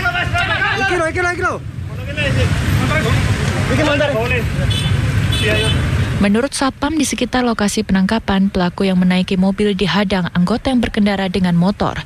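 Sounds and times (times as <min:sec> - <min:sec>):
street traffic rumble: 0:00.0 - 0:12.0
people talking: 0:05.5 - 0:12.0.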